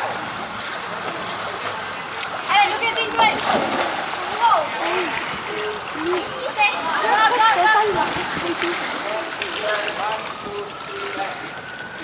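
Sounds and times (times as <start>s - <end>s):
swimmers splashing: 0.0s - 12.0s.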